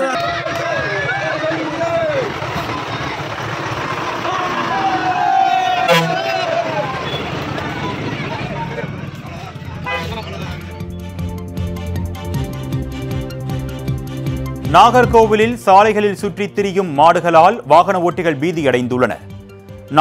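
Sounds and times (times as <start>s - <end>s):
crowd shouting and talking: 0.0s - 11.4s
bus engine running: 0.0s - 14.4s
long held tone: 5.9s - 6.5s.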